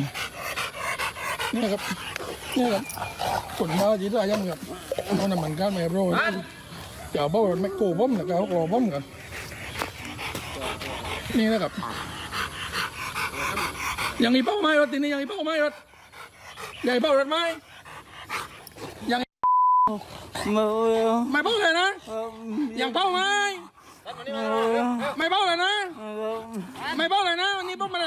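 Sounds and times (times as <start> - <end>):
dog panting hard: 0.0 - 19.2, 20.0 - 28.0.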